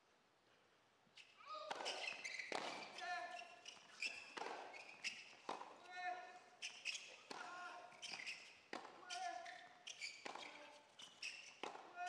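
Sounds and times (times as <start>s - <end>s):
tennis shoes squeaking on court: 1.2s - 5.7s, 6.6s - 11.8s
racket striking tennis ball: 10.2s - 10.5s.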